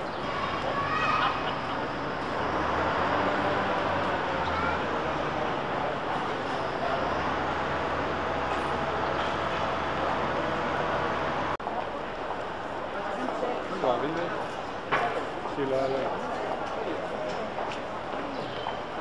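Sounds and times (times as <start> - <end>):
vehicle noise drone: 0.0 - 11.6.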